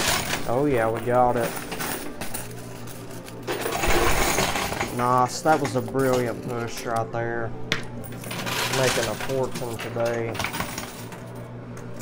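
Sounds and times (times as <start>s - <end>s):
coins clattering into chute: 0.0s - 6.8s, 8.0s - 11.4s.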